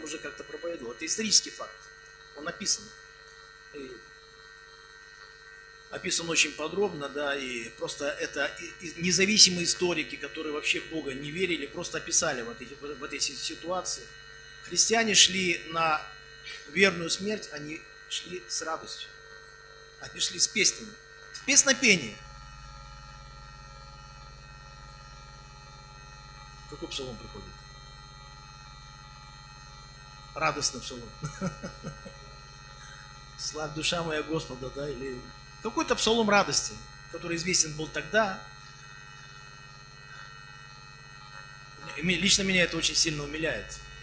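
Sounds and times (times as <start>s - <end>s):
steady electrical hum: 0.0s - 44.0s.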